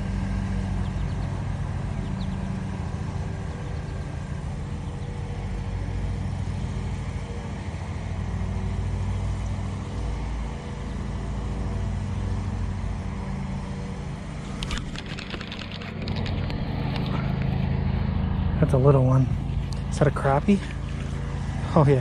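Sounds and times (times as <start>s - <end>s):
boat motor rumbling: 0.0s - 22.0s
sharp clicks: 14.5s - 17.6s.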